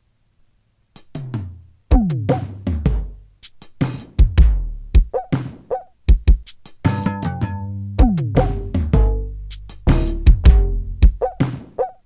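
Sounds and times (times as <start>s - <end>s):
drum machine kick and snare: 1.0s - 12.0s
low booming drum tails: 8.0s - 11.4s.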